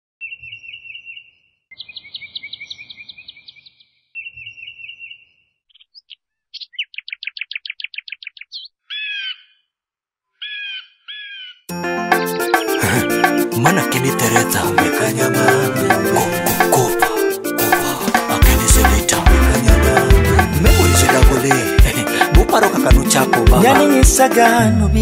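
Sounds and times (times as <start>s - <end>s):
birds singing: 0.2s - 9.8s, 10.4s - 12.8s
music: 11.7s - 25.0s.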